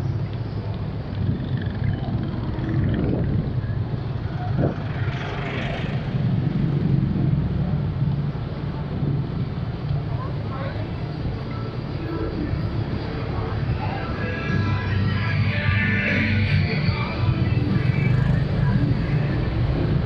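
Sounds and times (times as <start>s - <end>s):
motorcycle engine running: 0.0s - 8.1s
wind rumble on microphone: 0.0s - 11.4s
city street traffic: 0.0s - 20.0s.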